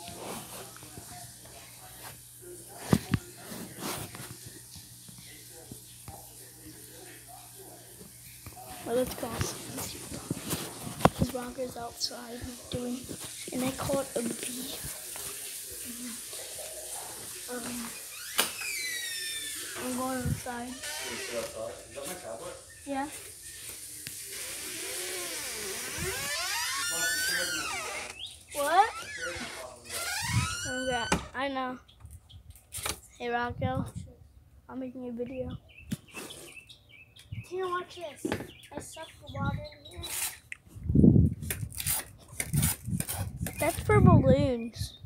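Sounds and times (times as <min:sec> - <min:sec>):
boy speaking indistinctly: 0:08.8 - 0:10.2, 0:11.0 - 0:14.9, 0:17.5 - 0:18.0, 0:19.8 - 0:20.8, 0:28.5 - 0:29.1, 0:30.6 - 0:31.9, 0:33.1 - 0:35.6, 0:37.4 - 0:40.4, 0:43.5 - 0:45.0.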